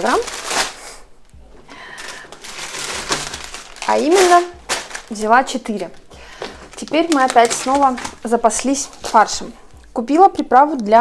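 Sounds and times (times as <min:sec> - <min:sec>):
plastic packs crinkling: 0:00.0 - 0:01.1, 0:01.7 - 0:09.6.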